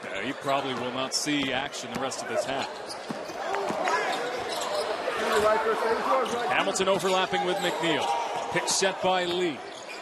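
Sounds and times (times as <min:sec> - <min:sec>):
voices in arena: 0:00.0 - 0:10.0.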